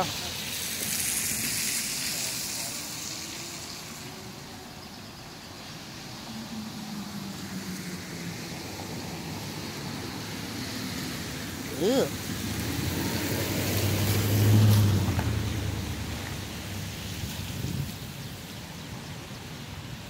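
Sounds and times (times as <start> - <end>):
vehicle passing: 0.0 - 18.1
fast-running river rushing: 0.0 - 20.0.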